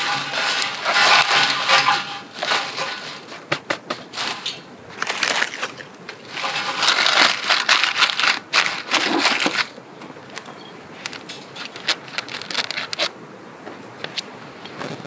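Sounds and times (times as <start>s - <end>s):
dry twigs rustling and crackling: 4.2s - 10.4s
high metallic ringing: 10.4s - 13.0s.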